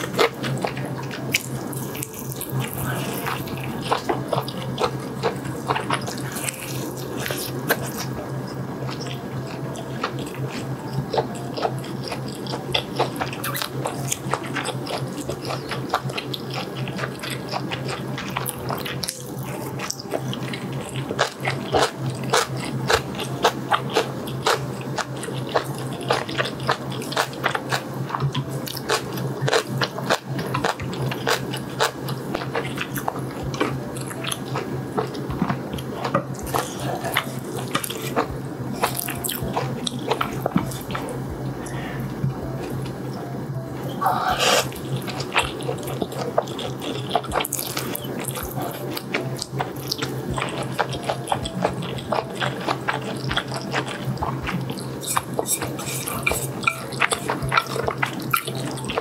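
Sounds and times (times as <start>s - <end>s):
chewing with wet mouth clicks: 0.0s - 42.9s, 44.4s - 59.0s
low hum: 0.0s - 59.0s.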